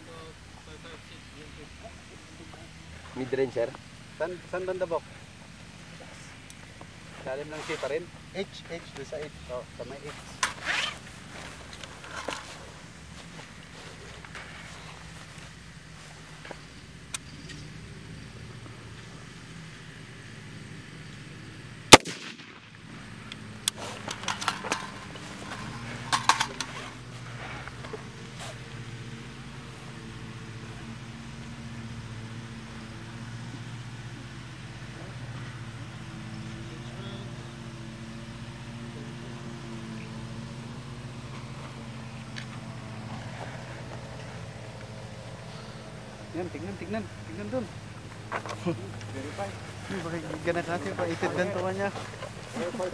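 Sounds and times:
rifle shot: 0:21.9 - 0:23.1
knocks and clatters: 0:24.0 - 0:27.0.

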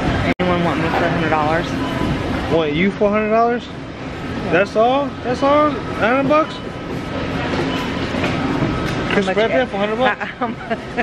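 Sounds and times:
supermarket rumbling background noise: 0:00.0 - 0:11.0.

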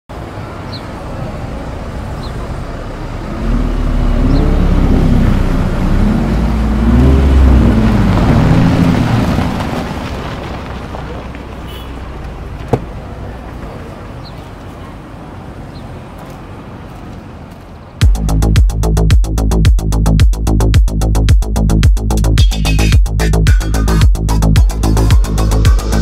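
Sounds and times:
car engine driving: 0:00.1 - 0:26.0.

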